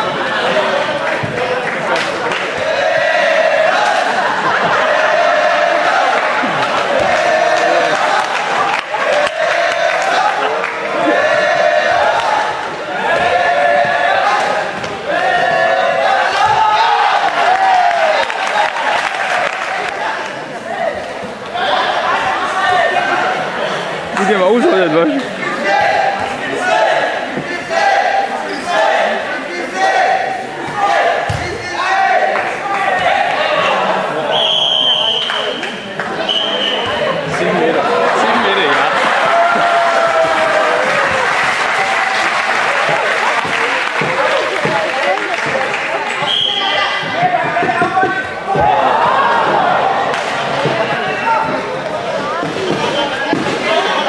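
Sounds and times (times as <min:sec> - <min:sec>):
players shouting: 0:00.0 - 0:54.0
crowd applauding: 0:03.8 - 0:11.3, 0:16.9 - 0:20.5, 0:37.2 - 0:46.9.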